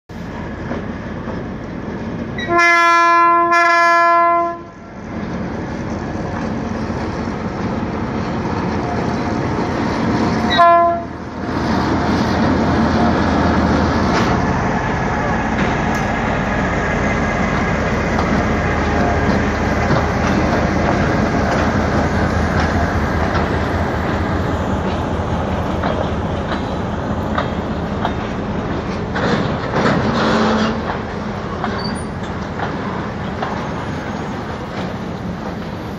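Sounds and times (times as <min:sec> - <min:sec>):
locomotive horn blasts: 0:02.4 - 0:04.8, 0:10.5 - 0:11.2
locomotive engine running: 0:04.7 - 0:35.9.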